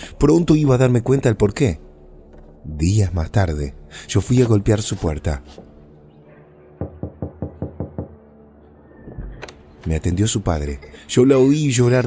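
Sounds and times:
knuckles knocking on door: 0:06.8 - 0:08.2.

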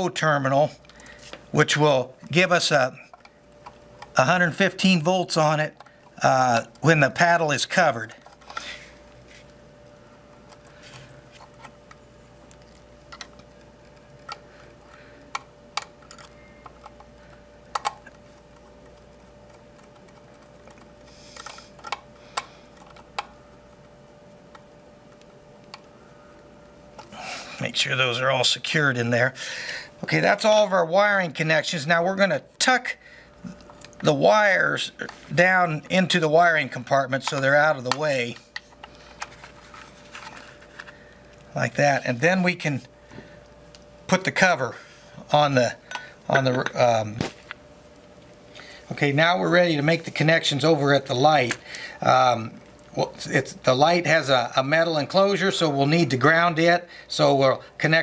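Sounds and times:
faint steady hum: 0:00.0 - 0:58.0
wires clicking and rustling: 0:10.3 - 0:23.9.

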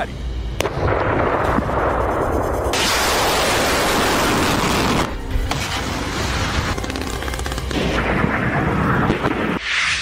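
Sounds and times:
missile launch rumbling rush: 0:00.6 - 0:06.7.

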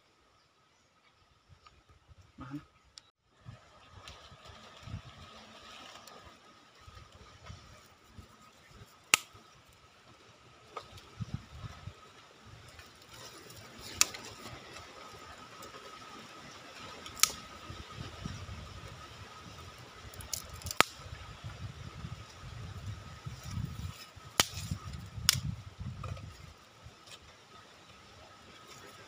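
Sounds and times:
small fire crackling: 0:05.6 - 0:29.0
fire pops and snaps: 0:09.0 - 0:09.6, 0:17.0 - 0:17.5, 0:20.1 - 0:21.2, 0:23.4 - 0:26.2
sticks laid on fire: 0:09.1 - 0:09.4, 0:17.1 - 0:17.4, 0:20.2 - 0:21.0, 0:24.3 - 0:25.5.

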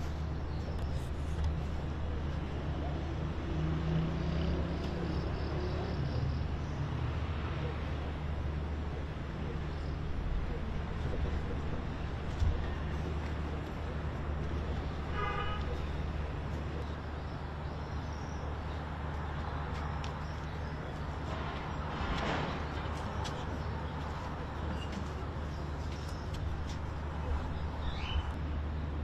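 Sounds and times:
distant traffic: 0:00.0 - 0:29.0
car horn toot: 0:15.1 - 0:15.7.

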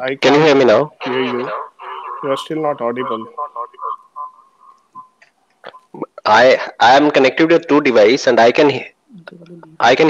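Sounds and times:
speech over video call: 0:00.0 - 0:10.0
thin whistle-like tone: 0:04.2 - 0:05.8.

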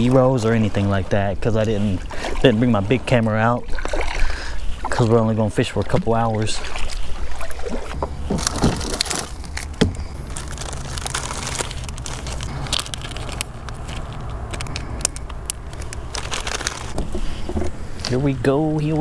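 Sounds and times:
steady low rumble: 0:07.2 - 0:19.0
plastic package crinkling: 0:08.2 - 0:17.0.

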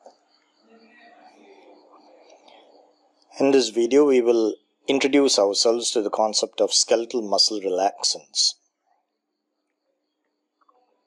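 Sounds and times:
faint steady low hum: 0:00.0 - 0:11.0.

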